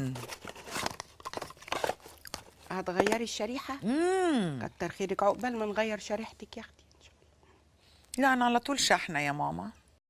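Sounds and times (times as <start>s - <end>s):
box packaging crinkling and tearing: 0.0s - 3.2s.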